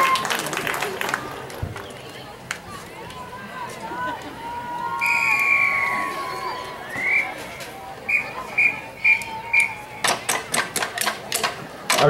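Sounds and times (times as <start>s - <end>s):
crowd clapping: 0.0s - 3.2s.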